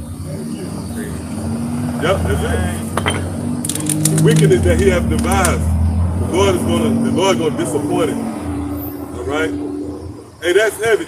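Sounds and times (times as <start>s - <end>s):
vehicle engine drone: 0.0s - 11.0s.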